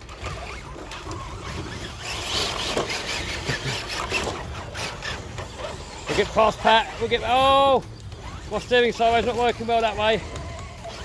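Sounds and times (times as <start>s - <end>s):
rc car motors running: 0.0s - 11.0s.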